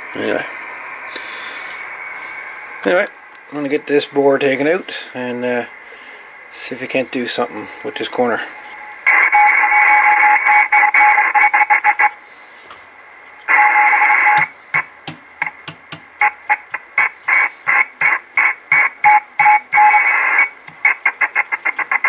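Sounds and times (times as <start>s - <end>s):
radio static with steady tone: 0.0s - 22.0s
sharp electrical crackles: 16.2s - 22.0s.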